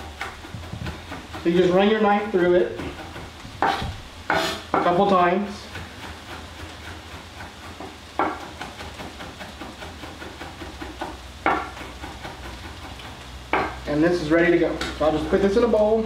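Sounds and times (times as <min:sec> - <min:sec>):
knife chopping on wooden board: 0:00.0 - 0:13.8
meat sizzling in a pan: 0:01.2 - 0:16.0.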